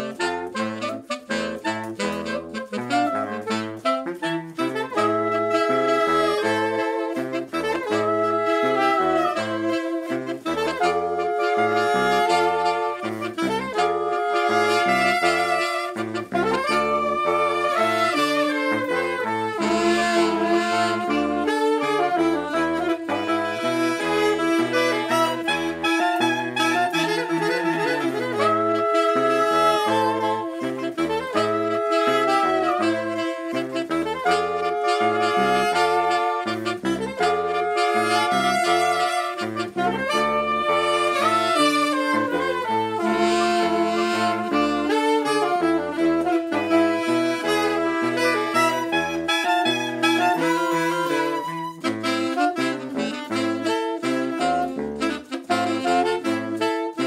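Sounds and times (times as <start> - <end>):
saxophones and clarinet playing: 0.0 - 57.0.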